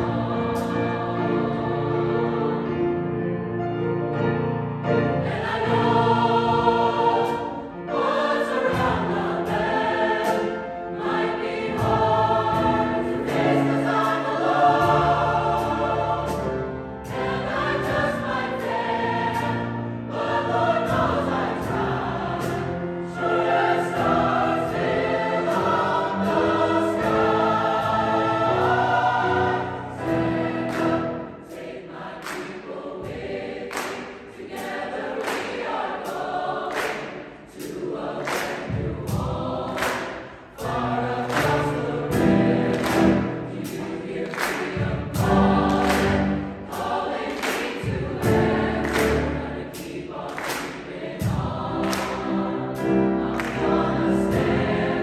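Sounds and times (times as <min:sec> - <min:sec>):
mixed choir singing chords: 0:00.0 - 0:55.0.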